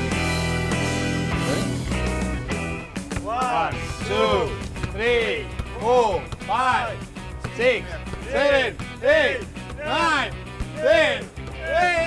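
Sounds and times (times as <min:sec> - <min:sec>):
background music: 0:00.0 - 0:12.0
voices shouting a count: 0:03.1 - 0:12.0.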